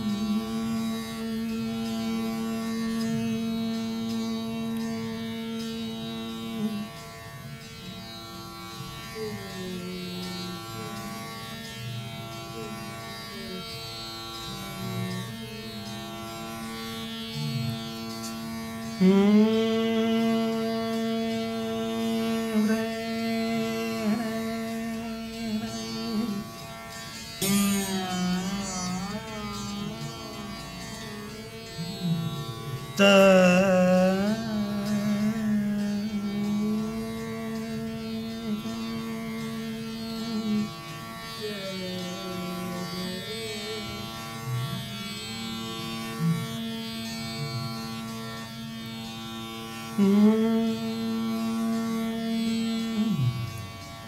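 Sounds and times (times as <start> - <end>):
steady drone: 0.0 - 54.0
plucked string notes sliding: 25.8 - 35.4.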